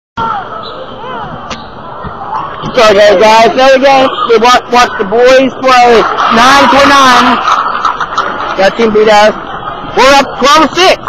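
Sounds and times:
crowd voices: 0.2s - 11.0s.

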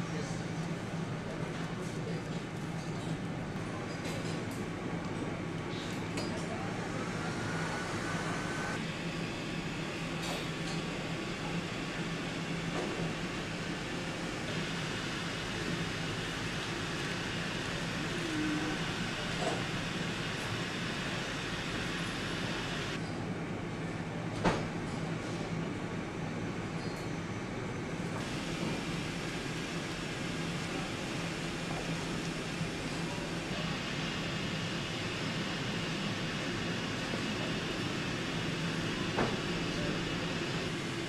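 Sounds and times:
low workshop hum: 0.0s - 41.0s.

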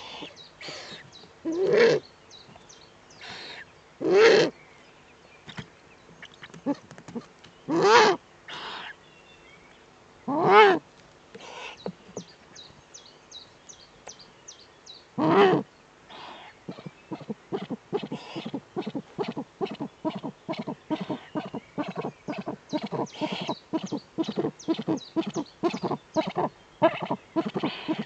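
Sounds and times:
owl harsh calls: 0.0s - 2.0s, 3.2s - 4.6s, 7.7s - 9.0s, 10.3s - 10.8s, 15.2s - 28.0s
owl clicking calls: 16.7s - 28.0s.

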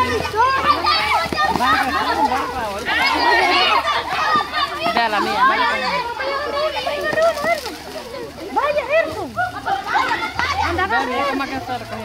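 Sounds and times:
children shouting and chattering: 0.0s - 12.0s.

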